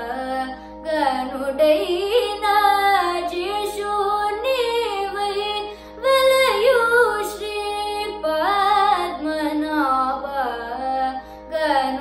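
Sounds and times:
electronic tanpura drone: 0:00.0 - 0:12.0
girl singing: 0:00.0 - 0:12.0.

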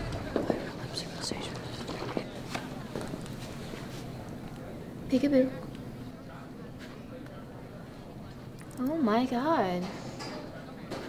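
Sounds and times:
whispering voices: 0:00.0 - 0:11.0.

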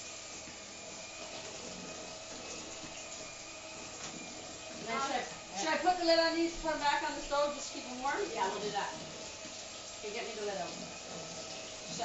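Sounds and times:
kitchen noise hiss: 0:00.0 - 0:12.0.

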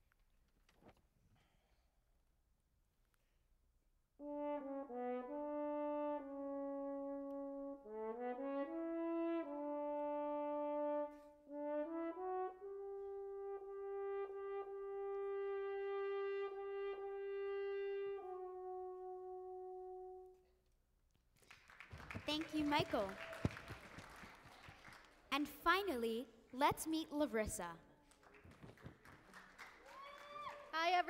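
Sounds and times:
solo french horn melody: 0:04.2 - 0:20.4.

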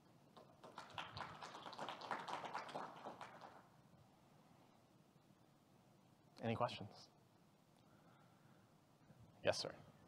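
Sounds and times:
light applause: 0:00.4 - 0:03.7.

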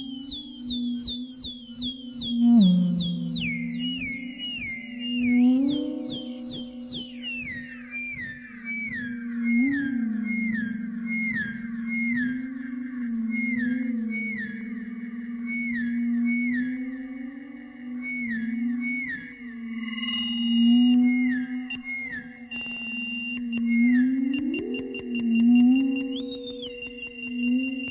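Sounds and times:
low feedback drone: 0:00.0 - 0:27.9
high whistling tones: 0:02.0 - 0:27.9.

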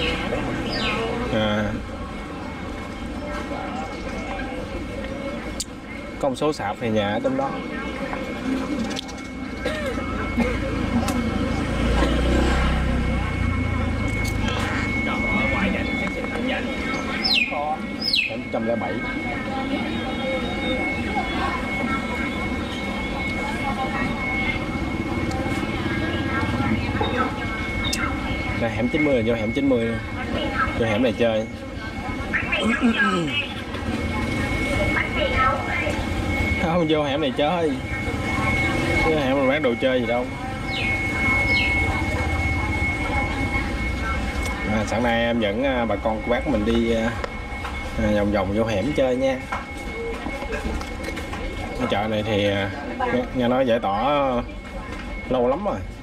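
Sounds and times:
low traffic rumble: 0:00.0 - 0:56.0
people talking: 0:00.0 - 0:56.0
thin high whine: 0:00.0 - 0:56.0
voices chattering: 0:00.0 - 0:56.0
motor scooter passing: 0:08.6 - 0:15.9.

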